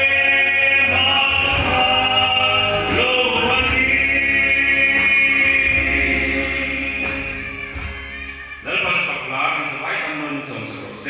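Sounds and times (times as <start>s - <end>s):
man singing into a microphone: 0.0s - 7.2s
backing music: 0.0s - 11.0s
man's voice through a microphone: 8.6s - 11.0s.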